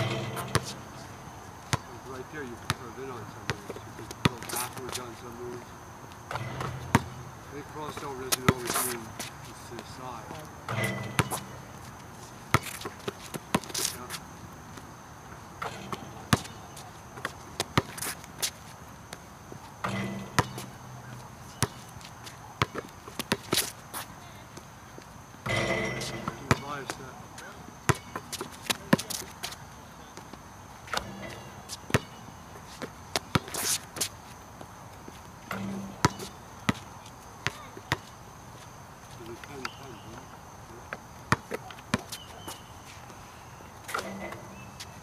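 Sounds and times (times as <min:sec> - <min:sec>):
basketball bouncing on hard court: 0:00.0 - 0:00.8, 0:06.3 - 0:08.8, 0:10.7 - 0:11.6, 0:12.5 - 0:13.9, 0:15.6 - 0:16.8, 0:19.8 - 0:20.8, 0:21.5 - 0:21.9, 0:25.5 - 0:26.8, 0:27.9 - 0:29.3, 0:30.9 - 0:32.2, 0:35.5 - 0:36.8, 0:37.4 - 0:38.1.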